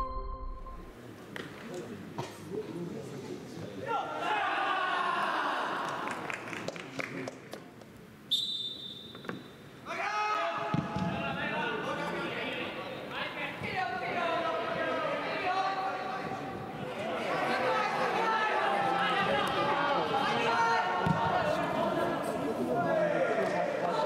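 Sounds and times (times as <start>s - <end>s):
referee's whistle long blast: 8.3s - 9.1s.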